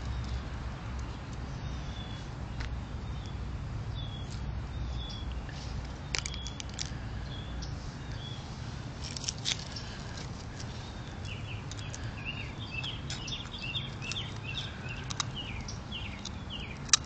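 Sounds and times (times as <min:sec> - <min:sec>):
songbird chirping: 0:00.0 - 0:17.0
sharp clicks: 0:12.8 - 0:17.0.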